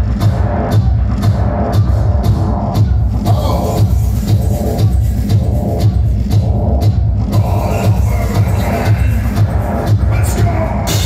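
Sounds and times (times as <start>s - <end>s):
heavy bass beat: 0.0s - 11.0s
loud electronic music: 0.0s - 11.0s.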